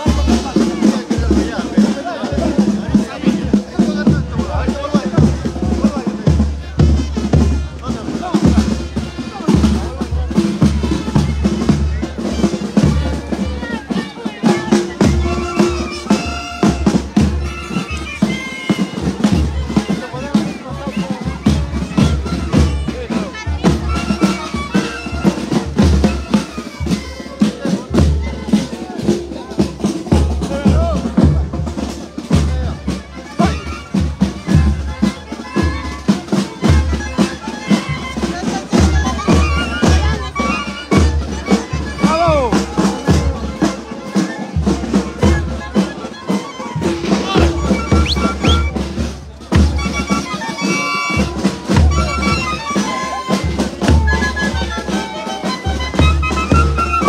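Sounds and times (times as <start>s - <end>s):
bass drum and snare drum: 0.0s - 57.0s
crowd voices: 0.0s - 57.0s
street band playing marching tune: 0.0s - 57.0s.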